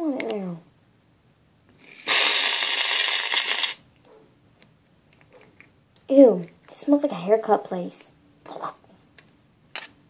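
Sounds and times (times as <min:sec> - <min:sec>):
aerosol can spraying foam: 0:02.1 - 0:03.8.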